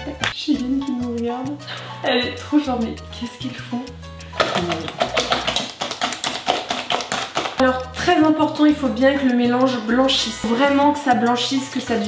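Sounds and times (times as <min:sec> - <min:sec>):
background music with bass: 0:00.0 - 0:05.7
whisk beating in metal bowl: 0:04.4 - 0:11.5.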